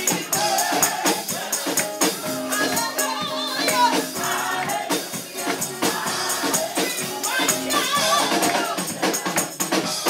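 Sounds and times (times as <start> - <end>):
other voices singing: 0.0 - 10.0.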